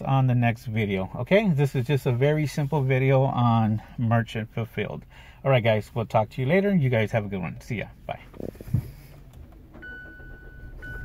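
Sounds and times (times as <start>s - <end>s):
car warning chime: 9.8s - 11.0s.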